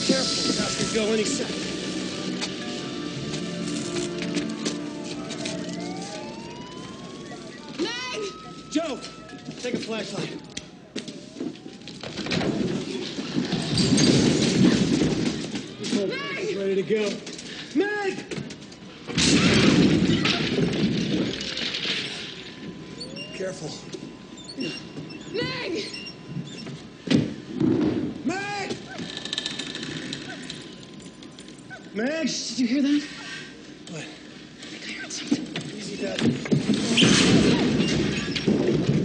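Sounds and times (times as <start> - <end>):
rain-like hiss: 0.0 - 4.2
debris crackling and rattling: 0.0 - 17.8, 18.4 - 26.6, 34.6 - 39.0.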